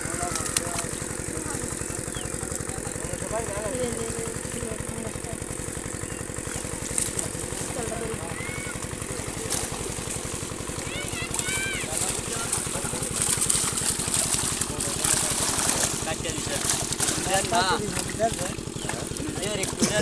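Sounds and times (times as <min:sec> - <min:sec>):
people's voices: 0:00.0 - 0:20.0
small engine throbbing: 0:00.0 - 0:20.0.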